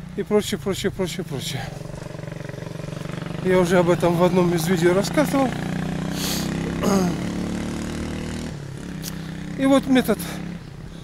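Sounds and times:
engine running steadily: 0.0s - 11.0s.

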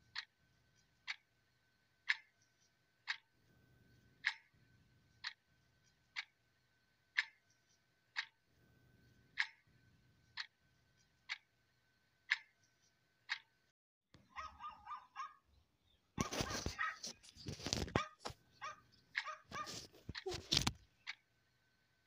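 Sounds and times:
sharp ticks: 2.0s - 3.3s, 4.1s - 6.4s, 7.1s - 8.4s, 9.3s - 9.7s, 10.3s - 10.6s, 11.2s - 11.5s, 12.2s - 13.6s, 18.6s - 21.3s
dog yapping barks: 14.3s - 15.4s, 16.2s - 17.1s, 18.0s - 19.8s
small dog whining: 18.0s - 20.5s.

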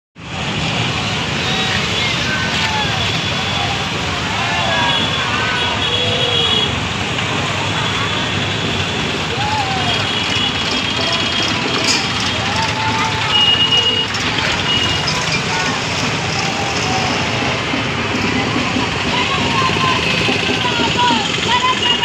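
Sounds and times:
road traffic: 0.2s - 22.0s
people calling out: 1.3s - 6.8s, 9.1s - 22.0s.

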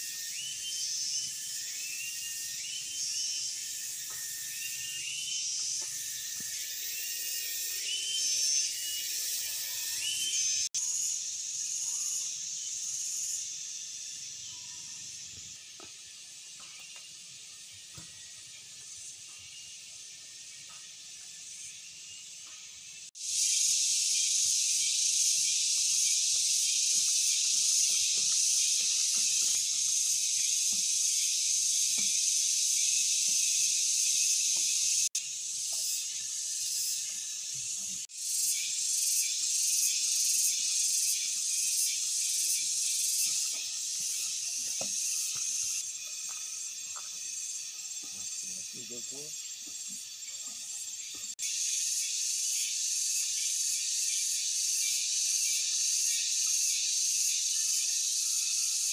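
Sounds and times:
cicadas buzzing drone: 0.0s - 58.9s.

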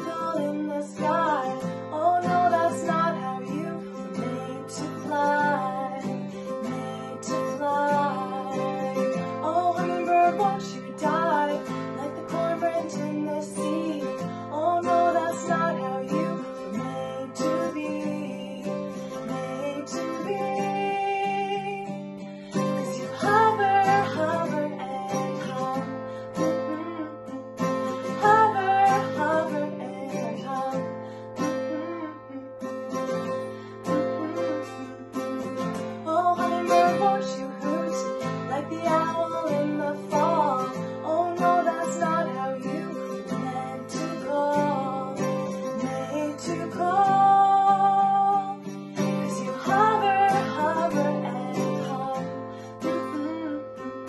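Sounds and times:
acoustic guitar strumming chords: 0.0s - 54.0s
woman singing: 0.0s - 54.0s.

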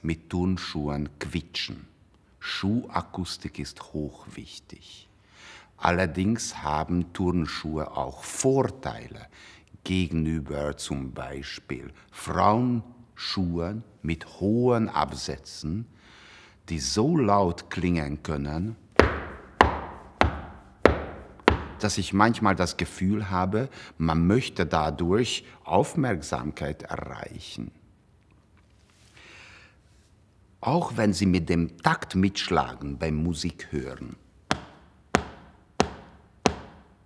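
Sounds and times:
shoe tapping on wooden floor: 19.0s - 21.8s, 34.5s - 37.0s
high heels clacking in a hall: 19.0s - 21.9s, 34.5s - 37.0s.

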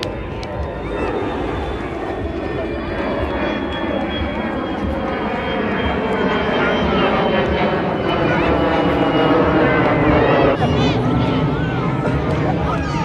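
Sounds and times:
airplane engine drone: 0.0s - 13.0s
beach crowd chatter: 0.0s - 13.0s.

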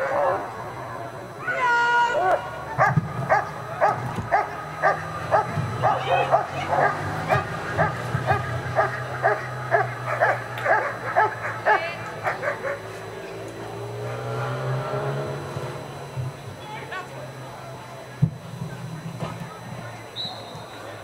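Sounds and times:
dog barking: 2.8s - 12.9s.

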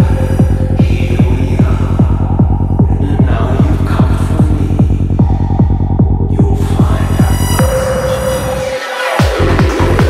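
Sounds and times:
psytrance kick drum: 0.0s - 10.0s
rolling bass pulsing: 0.0s - 10.0s.

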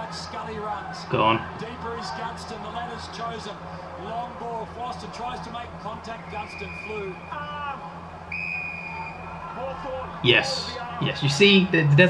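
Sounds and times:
faint commentary: 0.0s - 8.1s, 9.2s - 12.0s
referee whistle blast: 6.2s - 7.6s, 8.3s - 9.4s.

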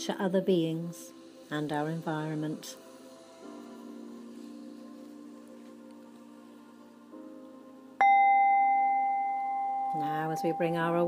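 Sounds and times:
metal chime ringing: 8.0s - 11.0s.

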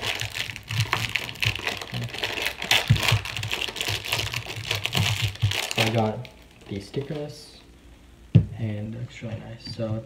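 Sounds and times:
plastic wrapping crinkling: 0.0s - 7.4s.

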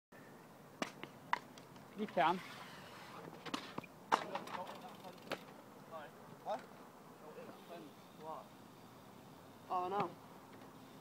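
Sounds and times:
faint steady hiss: 0.2s - 11.0s.

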